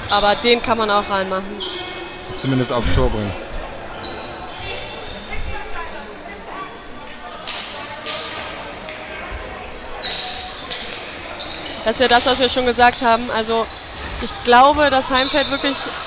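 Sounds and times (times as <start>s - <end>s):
faint players' voices: 0.0s - 16.0s.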